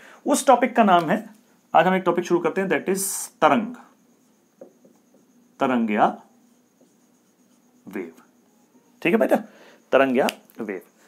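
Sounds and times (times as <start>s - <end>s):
marker scratching on whiteboard: 4.0s - 8.6s
person speaking: 7.8s - 8.4s.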